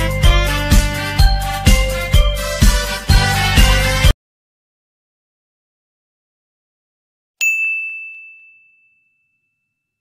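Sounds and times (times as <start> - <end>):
bell-like ding: 7.4 - 10.0.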